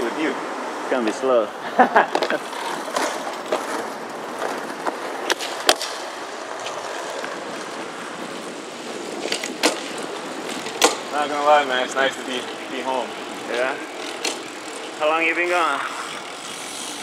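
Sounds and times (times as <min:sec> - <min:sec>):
bike tyre and wind noise: 0:00.0 - 0:17.0.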